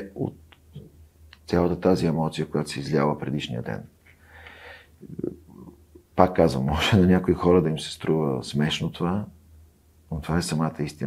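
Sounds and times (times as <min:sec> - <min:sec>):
man speaking: 0:00.0 - 0:04.0, 0:05.0 - 0:09.4, 0:10.1 - 0:11.0
man breathing in: 0:04.2 - 0:05.0.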